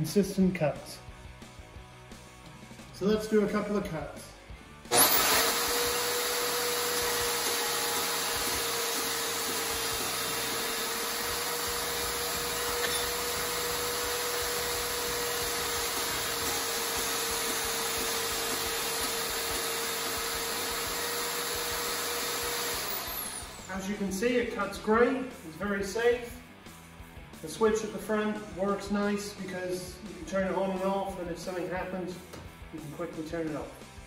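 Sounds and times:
bandsaw cutting metal: 0:04.9 - 0:23.9.

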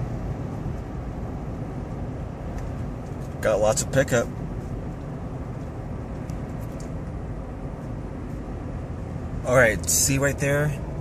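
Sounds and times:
car cabin road noise: 0:00.0 - 0:11.0.

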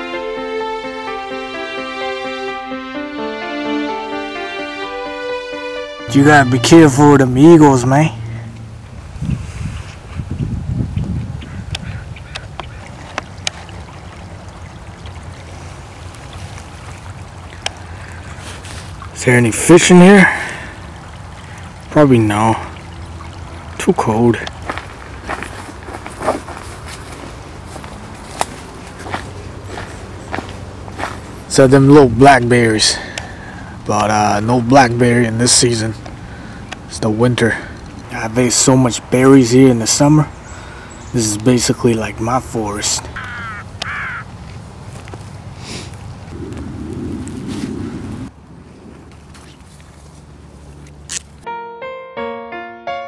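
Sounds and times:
piano notes: 0:00.0 - 0:09.0, 0:51.4 - 0:53.0
outdoor background noise: 0:06.1 - 0:51.5
footsteps crunching dry leaves: 0:24.6 - 0:31.5.

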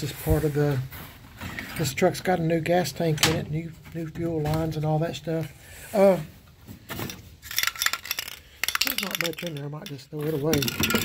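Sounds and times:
spray cans clinking together: 0:06.9 - 0:11.0.

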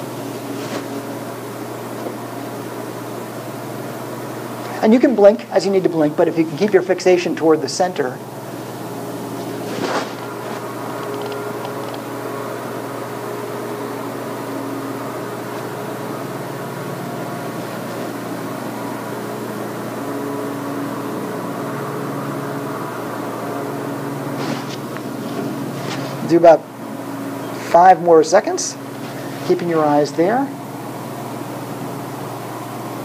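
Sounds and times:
mechanical room hum: 0:00.0 - 0:33.0.

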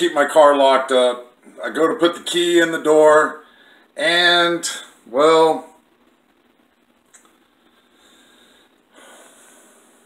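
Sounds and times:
man breathing through nose: 0:03.4 - 0:03.9, 0:07.4 - 0:10.0.

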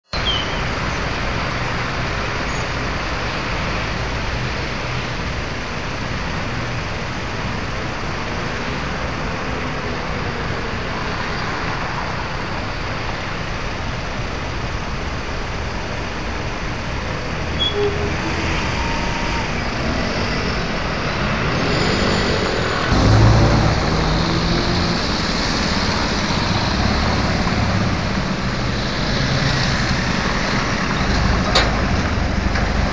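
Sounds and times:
traffic driving past: 0:15.8 - 0:32.9.

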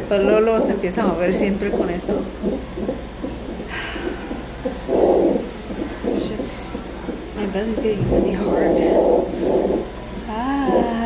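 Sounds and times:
doppler heartbeat whooshing pulses: 0:00.0 - 0:11.0.

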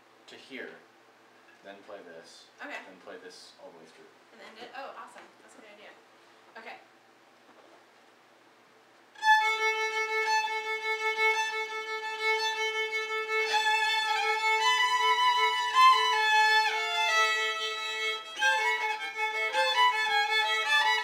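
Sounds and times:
violin holding low note: 0:09.2 - 0:21.0
violin slow melody: 0:09.2 - 0:21.0.

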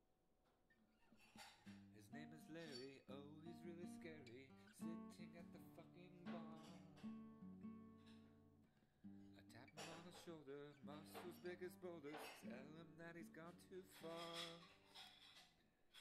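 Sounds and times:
acoustic guitar picking: 0:01.7 - 0:15.3.

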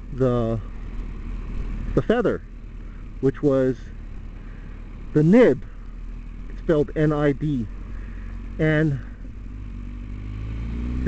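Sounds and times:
motor vehicle engine rumble: 0:00.0 - 0:11.0.

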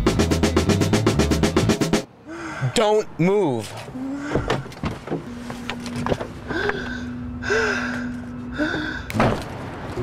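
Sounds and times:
person gasping breaths: 0:02.2 - 0:02.8, 0:04.0 - 0:04.7, 0:06.4 - 0:09.1.

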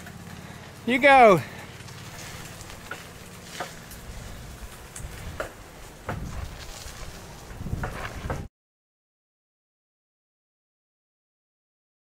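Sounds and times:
bicycle clicks and knocks: 0:01.4 - 0:08.5.

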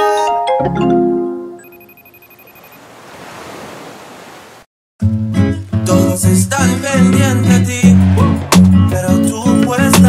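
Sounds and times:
faint high steady tone: 0:01.6 - 0:02.8
white-noise riser: 0:07.3 - 0:10.0.

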